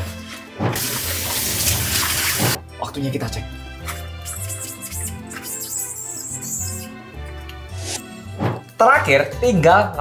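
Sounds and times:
water rushing from tap into sink: 0:00.8 - 0:02.6.

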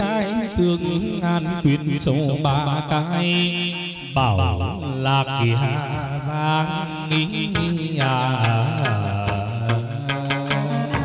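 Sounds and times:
chanted vocal with wavering pitch: 0:00.0 - 0:11.0.

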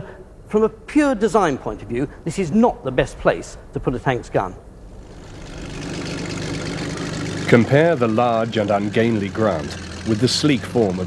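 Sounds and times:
heavy tracked vehicle engine: 0:05.0 - 0:11.0.

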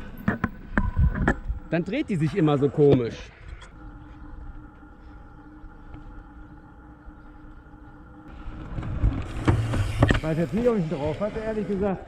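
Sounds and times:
electric whine of gimbal motors: 0:03.2 - 0:12.0
bike rumbling on wooden ramp: 0:08.3 - 0:11.6.

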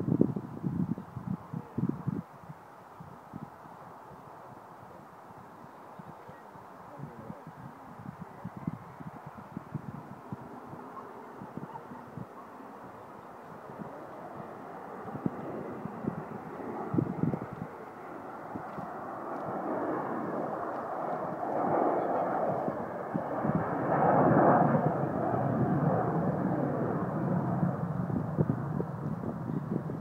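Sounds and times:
wind on microphone: 0:00.0 - 0:30.0
jet aircraft flying past: 0:08.5 - 0:30.0.

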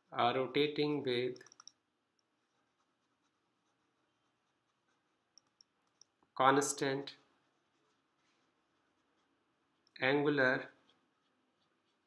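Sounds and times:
stylus ticking on drawing tablet: 0:01.3 - 0:06.4, 0:07.1 - 0:10.0, 0:10.6 - 0:12.0.

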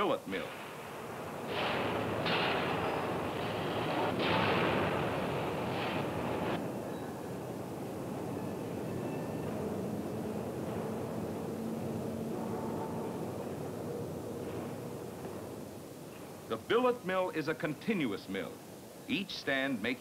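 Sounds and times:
rolling mill machinery din: 0:00.0 - 0:18.8.

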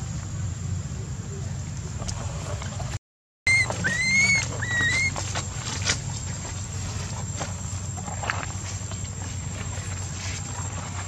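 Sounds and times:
low steady hum: 0:00.0 - 0:11.0
rustling on dry ground: 0:02.0 - 0:11.0
infant monkey crying: 0:03.5 - 0:05.2.

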